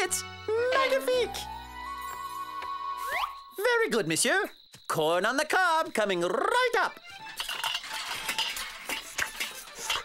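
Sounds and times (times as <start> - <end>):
light background music: 0.0 - 3.6
dishes and cutlery clattering: 7.3 - 10.0.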